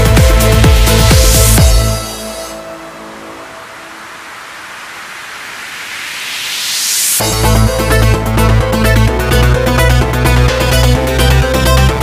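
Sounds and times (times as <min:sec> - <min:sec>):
electronic dance music: 0:00.0 - 0:12.0
rushing noise riser: 0:01.4 - 0:09.0.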